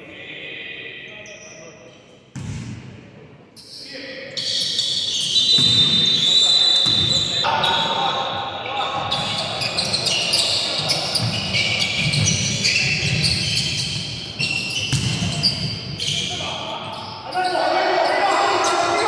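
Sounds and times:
sneakers squeaking on floor: 3.6s - 19.0s
basketball bouncing: 14.8s - 15.4s.

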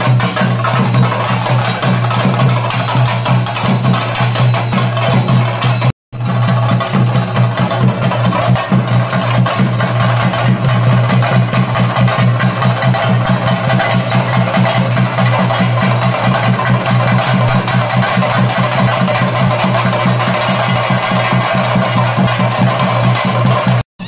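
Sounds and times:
drums playing fast rhythm: 0.0s - 23.8s.

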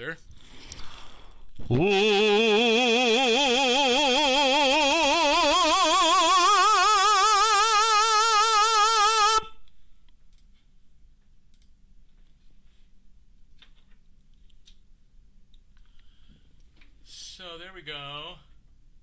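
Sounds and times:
tenor singing with vibrato: 1.6s - 9.6s.

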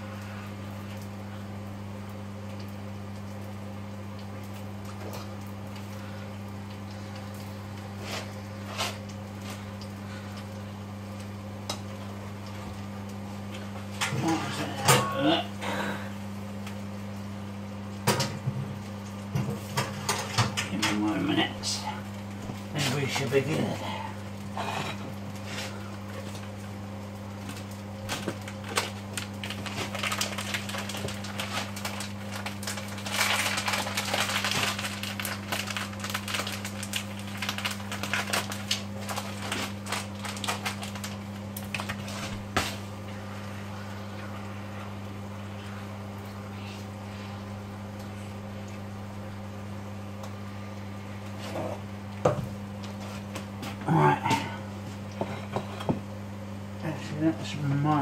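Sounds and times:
steady low hum: 0.0s - 58.0s.

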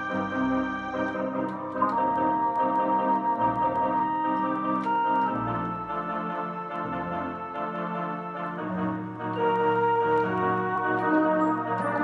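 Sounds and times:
electronic keyboard melody: 0.0s - 12.0s.

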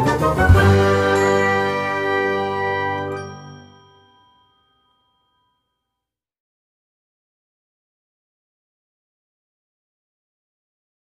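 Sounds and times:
bell-like chime: 0.6s - 6.1s.

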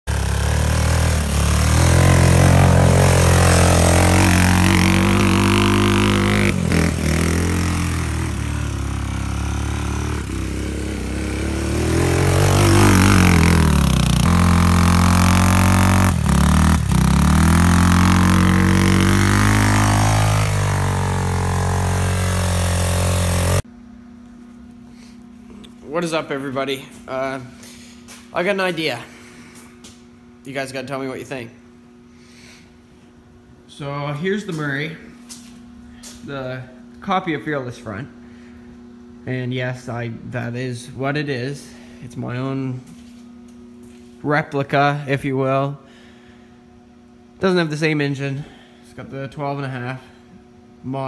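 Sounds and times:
atv engine revving: 0.1s - 23.6s.

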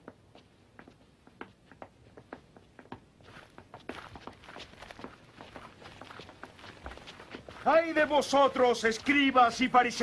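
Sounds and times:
footsteps on stone paving: 0.0s - 10.0s.

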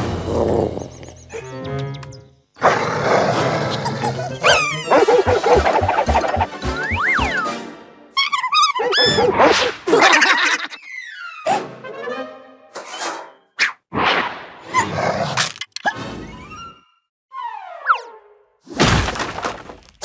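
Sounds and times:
lively cartoon music: 0.0s - 2.6s, 3.3s - 13.7s
cartoon bulldog vocal sounds: 3.8s - 7.4s.

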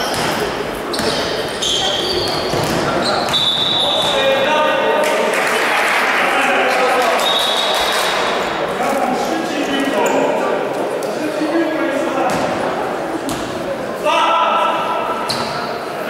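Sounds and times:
sneakers squeaking on hardwood: 0.0s - 4.2s, 15.2s - 15.7s
basketball bouncing: 2.2s - 3.4s.

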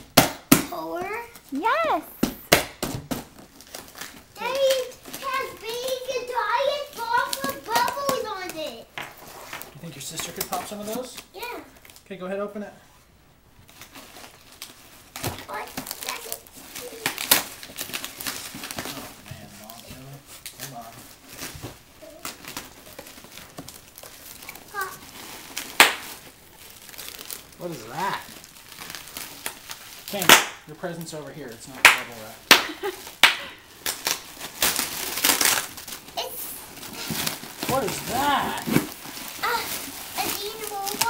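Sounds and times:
cardboard and plastic crinkling: 0.7s - 12.1s, 13.6s - 41.0s.

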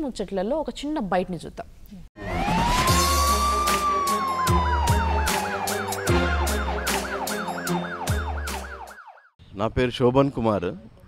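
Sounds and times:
bass: 2.2s - 8.8s
television title music: 2.2s - 9.1s
siren-like warble: 2.2s - 9.4s.

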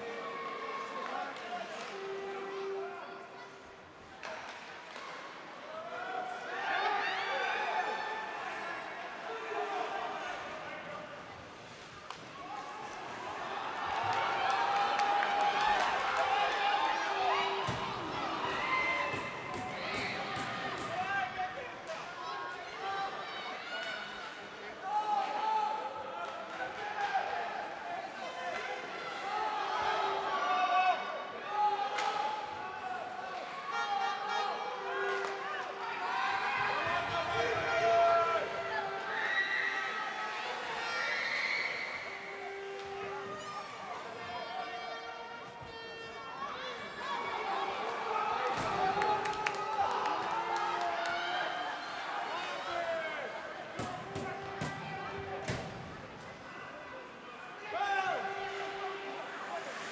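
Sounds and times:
players shouting in rink: 0.0s - 59.9s.

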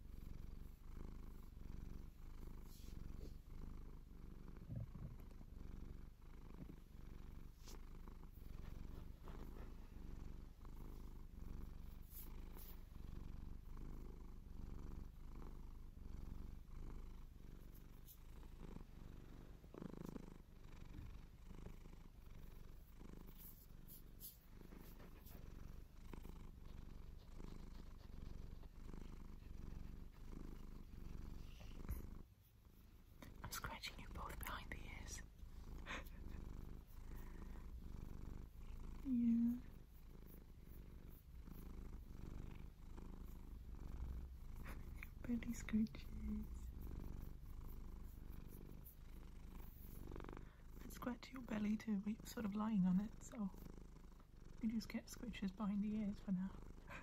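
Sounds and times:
cat purring: 0.0s - 57.0s
fingers scratching fur: 11.8s - 12.9s, 22.7s - 31.0s.

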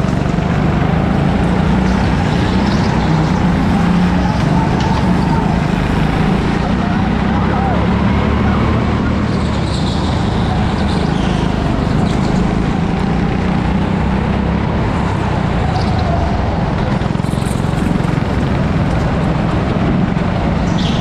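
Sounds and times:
go-kart engine running: 0.0s - 21.0s.

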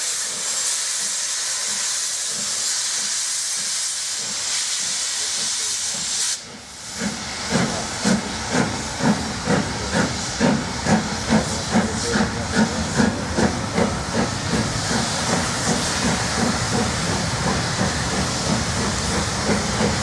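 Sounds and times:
steady hiss of steam: 0.0s - 20.0s
steam locomotive chimney exhaust beats: 0.0s - 20.0s.

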